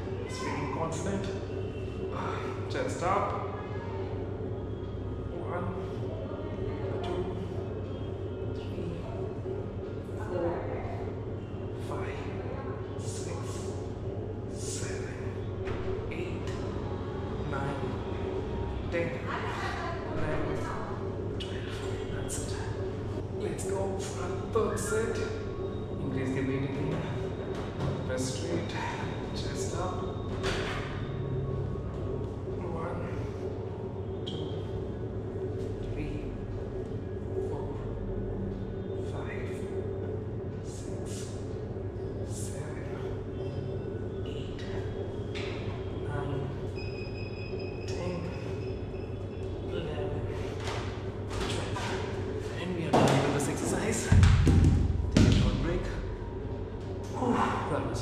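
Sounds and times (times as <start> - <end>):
room hum: 0.0 - 58.0.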